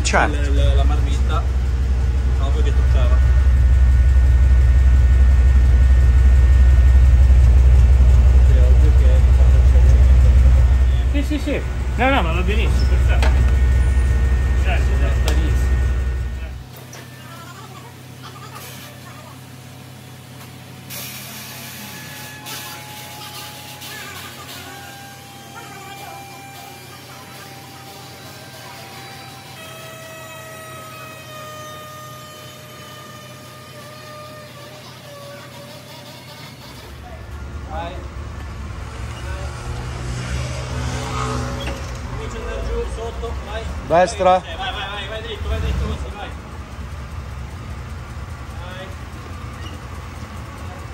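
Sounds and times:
low engine rumble: 0.0 - 50.9
voices: 0.0 - 50.9.

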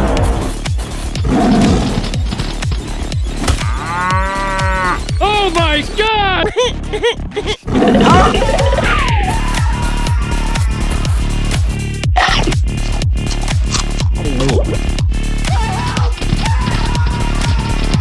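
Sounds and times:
background music: 0.0 - 18.0.

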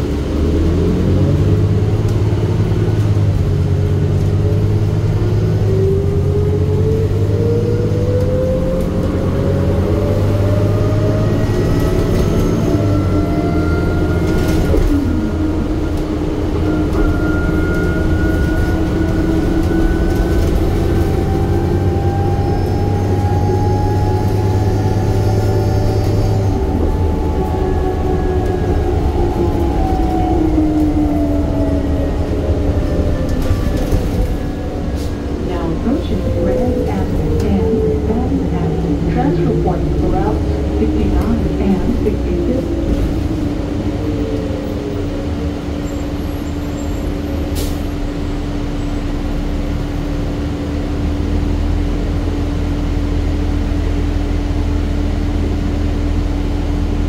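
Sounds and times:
bus engine whine: 0.0 - 57.0.

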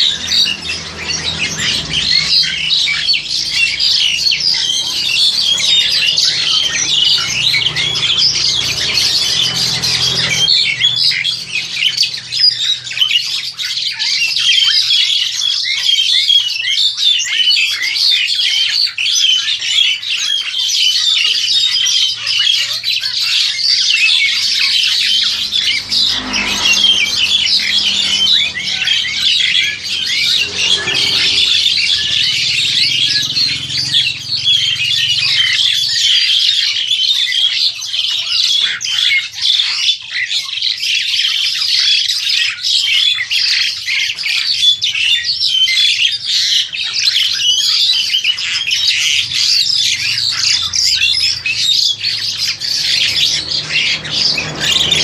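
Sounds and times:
birds chirping and squawking: 0.0 - 55.0.

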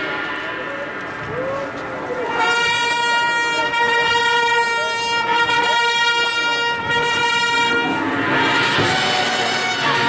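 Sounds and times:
long horn-like note: 0.0 - 10.0.

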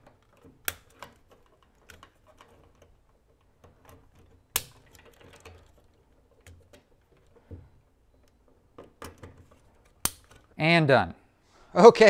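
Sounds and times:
plastic clicks and snaps: 0.0 - 7.5, 8.2 - 10.6.

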